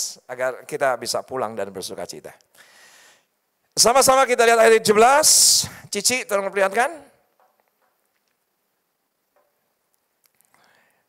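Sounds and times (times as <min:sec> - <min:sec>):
soft breathy sound: 0:10.4 - 0:11.0.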